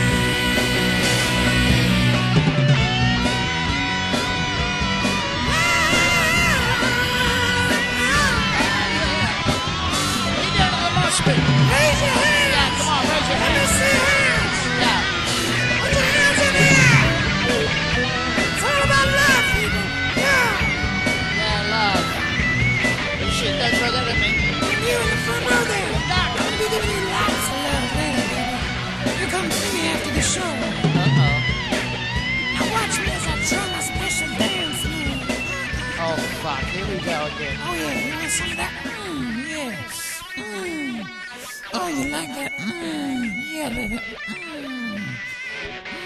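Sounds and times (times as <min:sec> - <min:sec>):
drums: 0:00.0 - 0:46.0
electric guitar bent notes: 0:00.0 - 0:46.0
live rock band: 0:00.0 - 0:46.0.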